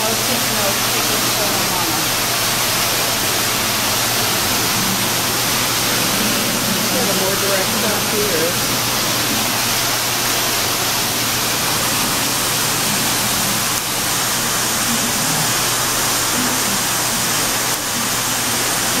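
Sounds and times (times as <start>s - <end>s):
low hum: 0.0s - 18.6s
loud rushing noise: 0.0s - 19.0s.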